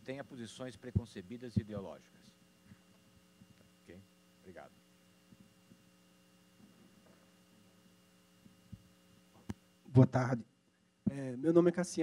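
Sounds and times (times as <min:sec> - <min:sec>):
man speaking into microphone: 0:00.0 - 0:02.4, 0:03.8 - 0:04.8, 0:09.9 - 0:10.5, 0:11.1 - 0:12.0
electrical hum: 0:00.0 - 0:12.0.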